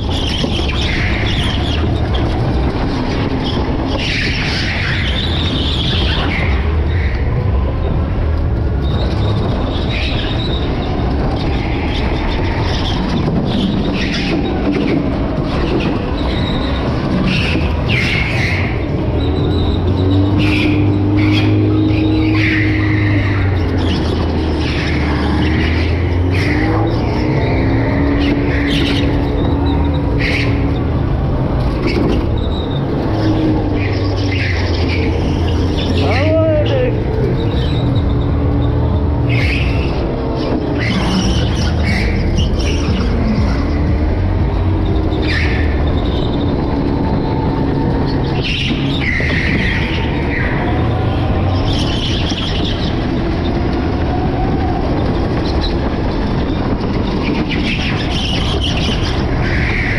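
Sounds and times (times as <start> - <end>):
tyre squeals: 0.0 - 7.9, 8.5 - 59.9.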